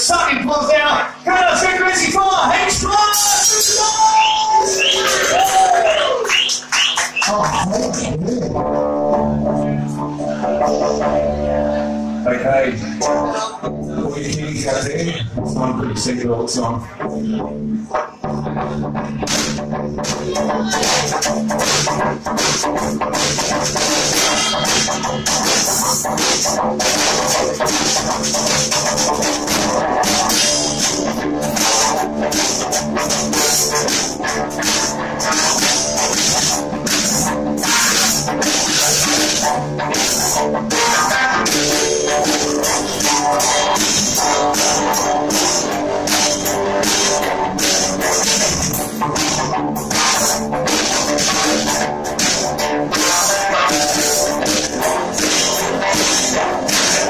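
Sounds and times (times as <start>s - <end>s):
electric guitar rock: 1.0s - 57.0s
drum and cymbal hits: 2.6s - 5.8s, 19.2s - 57.0s.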